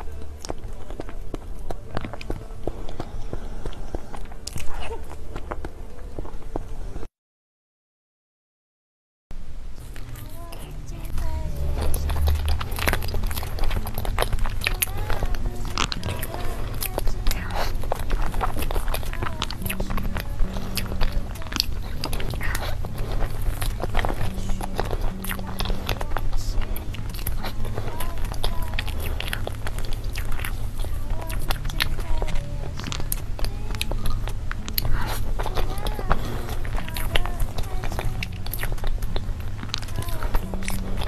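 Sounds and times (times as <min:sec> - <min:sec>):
lip smacks: 0:00.0 - 0:06.8, 0:09.8 - 0:41.0
background music low notes: 0:00.0 - 0:07.1, 0:09.4 - 0:41.0
wet chewing: 0:00.0 - 0:07.1, 0:09.8 - 0:41.0.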